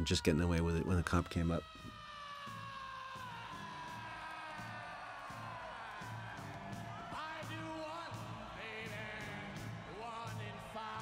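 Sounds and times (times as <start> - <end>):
bass and drum beat: 4.6 - 10.6.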